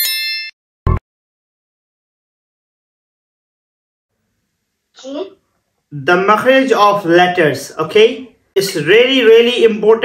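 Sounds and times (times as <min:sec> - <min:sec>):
bright bell ding: 0:00.0 - 0:00.6.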